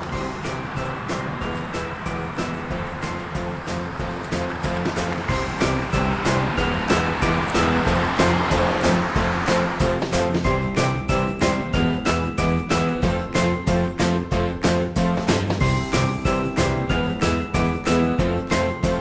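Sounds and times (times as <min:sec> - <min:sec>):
background music with steady beat: 0:00.0 - 0:19.0.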